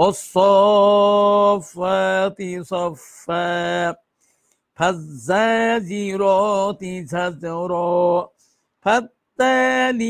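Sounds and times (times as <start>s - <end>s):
man chanting verses: 0.0s - 4.0s, 4.8s - 10.0s.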